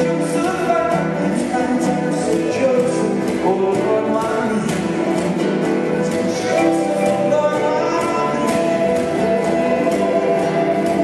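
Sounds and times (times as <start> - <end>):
flute: 0.0 - 3.2, 5.7 - 11.0
acoustic guitar: 0.0 - 11.0
light percussion: 0.0 - 11.0
upright bass: 0.0 - 11.0
violin: 0.0 - 11.0.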